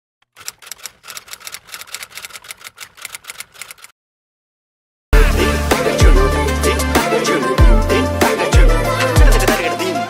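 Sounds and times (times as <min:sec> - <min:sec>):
typewriter key clicks: 0:00.2 - 0:03.9.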